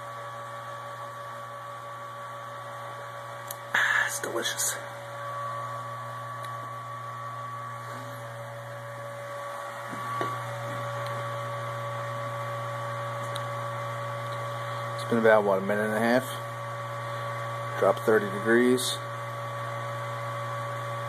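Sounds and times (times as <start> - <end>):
electric pump humming: 0.0 - 21.0.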